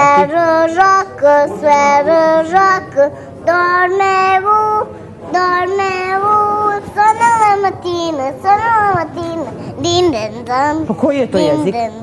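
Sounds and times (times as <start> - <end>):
girl singing unaccompanied: 0.0 - 12.0.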